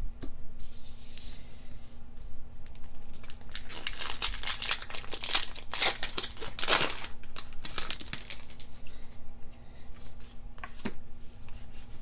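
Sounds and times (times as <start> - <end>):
foil wrapper crinkling and tearing: 2.7 - 8.8.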